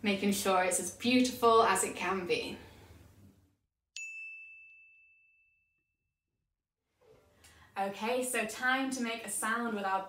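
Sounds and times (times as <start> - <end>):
bell-like ding: 4.0 - 5.9.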